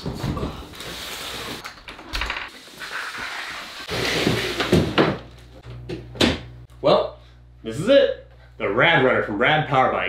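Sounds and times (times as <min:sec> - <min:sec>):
box scraping across wooden floor: 0:03.8 - 0:05.0.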